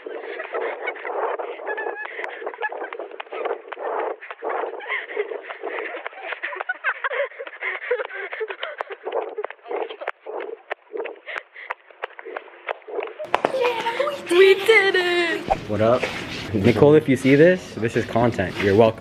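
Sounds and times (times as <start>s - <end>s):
footsteps and camera thuds: 0.0s - 6.8s, 15.4s - 16.5s
girls laughing: 0.0s - 11.7s, 13.1s - 17.0s
heavy breathing: 0.0s - 13.0s.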